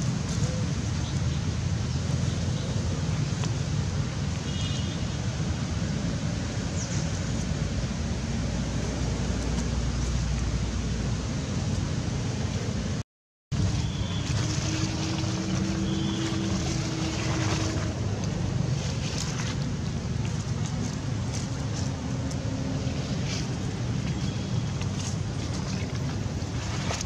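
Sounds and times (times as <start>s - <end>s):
rushing outdoor background noise: 0.0s - 27.0s.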